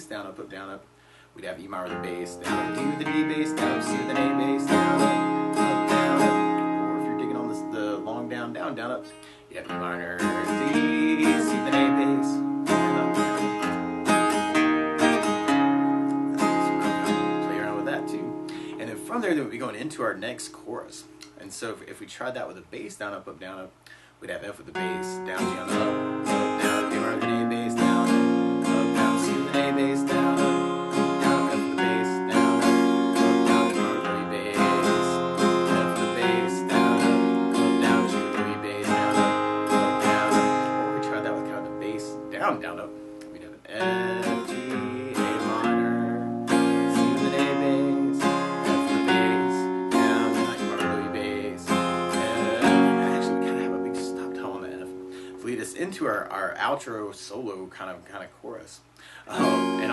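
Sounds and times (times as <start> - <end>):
acoustic guitar strumming: 0.0 - 23.2, 23.9 - 59.9.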